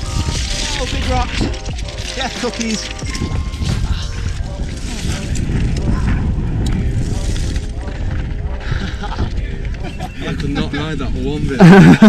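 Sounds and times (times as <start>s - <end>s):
bike tyres rattling over rocks: 0.0s - 9.4s
wind on microphone: 3.0s - 12.0s.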